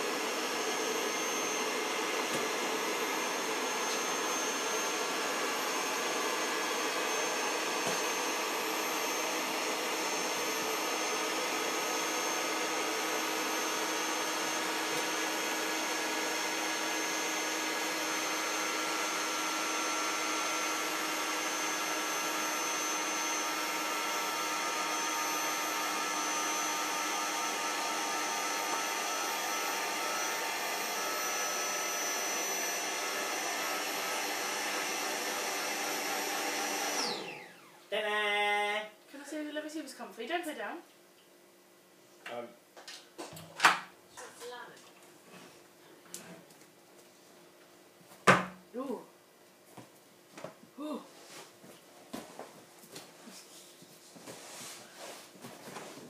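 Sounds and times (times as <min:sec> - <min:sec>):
electric air pump running: 0:00.0 - 0:37.8.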